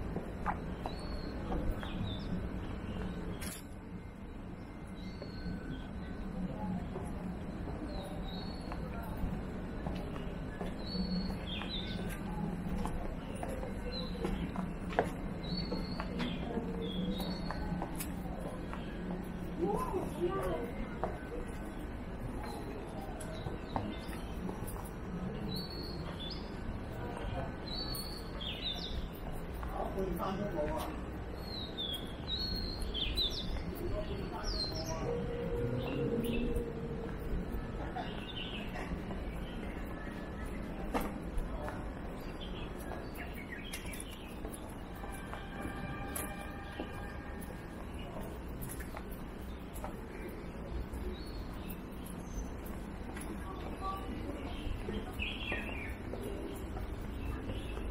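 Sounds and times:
birds chirping: 0.1s - 57.9s
small birds chirping: 10.0s - 19.1s.

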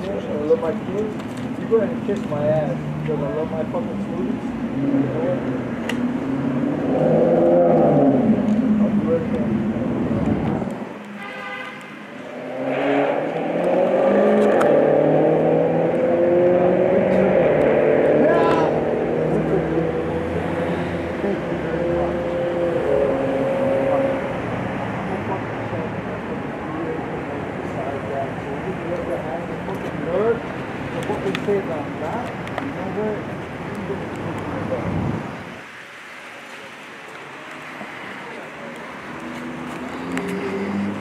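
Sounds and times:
car engine: 0.0s - 41.0s.

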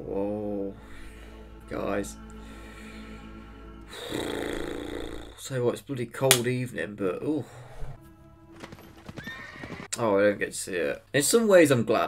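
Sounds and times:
soundtrack music: 0.0s - 4.8s, 7.5s - 9.5s
horse whinnying: 7.5s - 10.0s
horse hooves clip-clopping: 8.0s - 9.9s.

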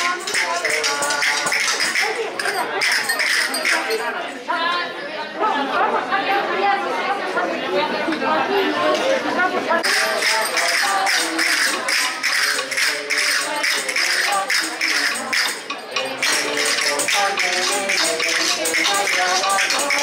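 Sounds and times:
hand percussion beating: 0.0s - 4.2s, 9.8s - 20.0s
voices chattering: 0.0s - 20.0s.

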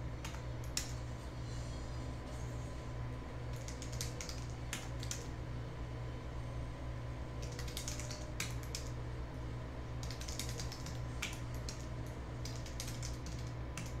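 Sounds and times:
low electrical hum: 0.0s - 14.0s
computer keyboard typing: 3.5s - 5.3s, 7.4s - 8.9s, 10.0s - 14.0s.

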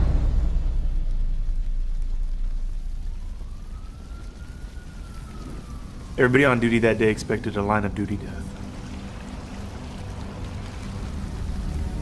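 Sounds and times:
fire roaring and crackling: 0.0s - 12.0s
distant siren wailing: 1.2s - 12.0s.

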